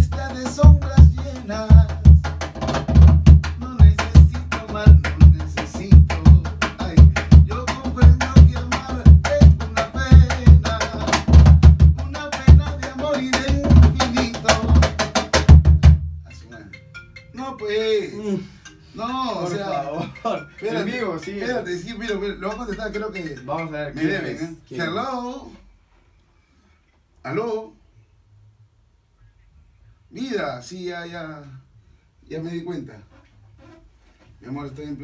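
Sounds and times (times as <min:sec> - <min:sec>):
hand drum bass strokes and slaps: 0:00.0 - 0:16.0.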